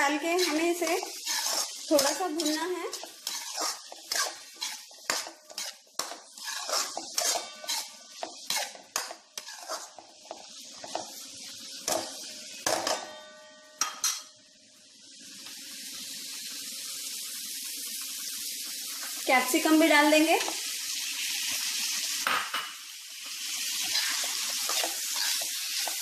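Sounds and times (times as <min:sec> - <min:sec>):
spatula scraping metal pan: 0:00.0 - 0:11.2, 0:23.8 - 0:26.0
vegetables sizzling in pan: 0:00.0 - 0:26.0.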